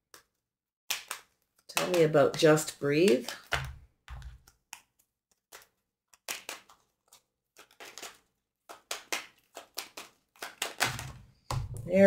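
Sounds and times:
cards being shuffled: 0:00.1 - 0:12.0.

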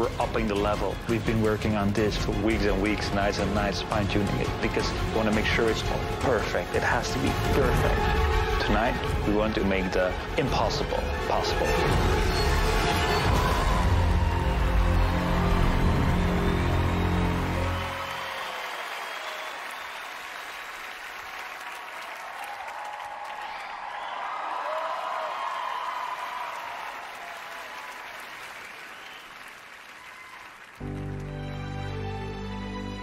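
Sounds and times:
audience applauding and cheering: 0:00.0 - 0:32.8.

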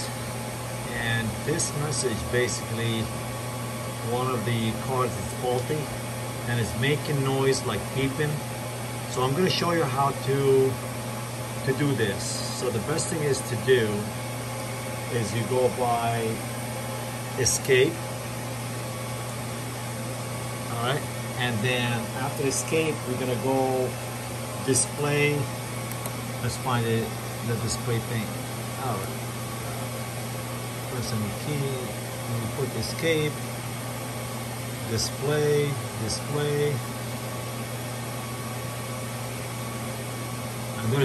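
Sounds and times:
cooling fans whirring: 0:00.0 - 0:41.0
steady low hum: 0:00.0 - 0:41.0.

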